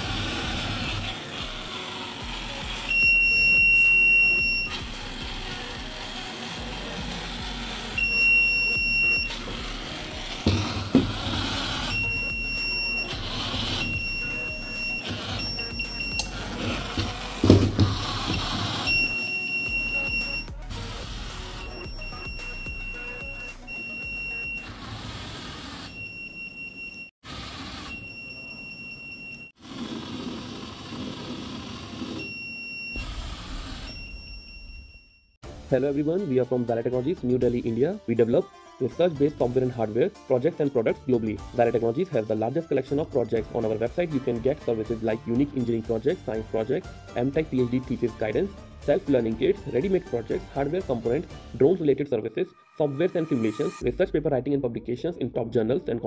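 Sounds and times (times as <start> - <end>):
high-pitched buzzer beeps: 2.8 - 6.0, 7.8 - 24.9, 27.8 - 29.5.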